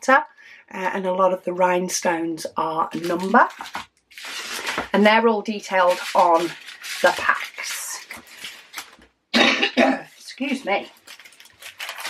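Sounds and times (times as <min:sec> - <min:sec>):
woman coughing: 0:09.3 - 0:10.2.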